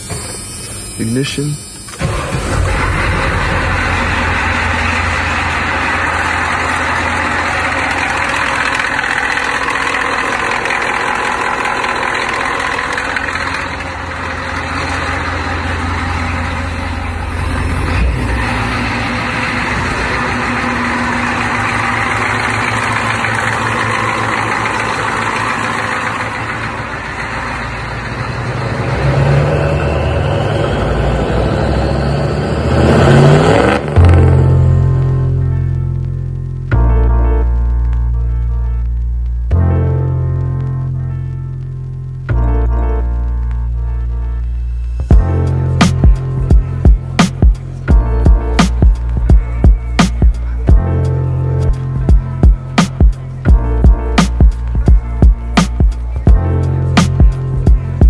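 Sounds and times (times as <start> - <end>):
diesel engine idling: 0.0 - 58.0.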